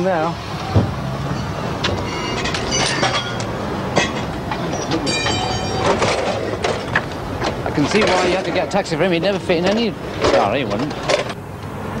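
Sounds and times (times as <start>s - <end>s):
street traffic: 0.0s - 12.0s
high ringing squeals: 1.2s - 6.4s
sharp metallic clinks: 1.3s - 6.9s.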